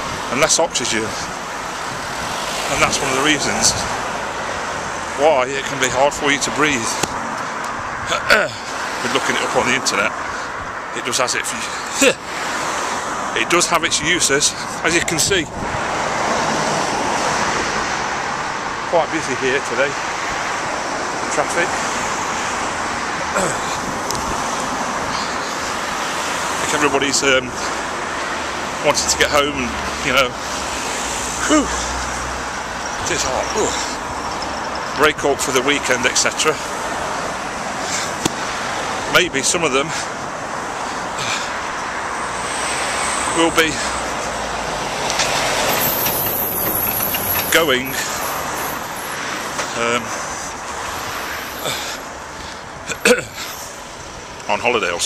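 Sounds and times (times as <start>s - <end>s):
cars passing close by: 0.0s - 55.0s.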